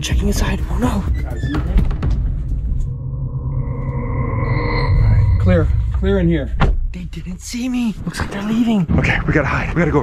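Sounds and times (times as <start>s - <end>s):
low rumbling drone: 0.6s - 7.2s.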